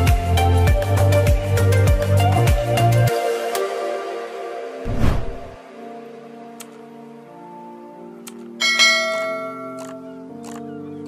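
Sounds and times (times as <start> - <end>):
music with sustained chords: 0.0 - 11.0.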